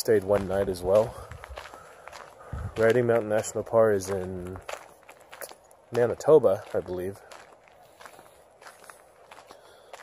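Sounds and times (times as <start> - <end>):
footsteps on gravel: 0.0 - 10.0.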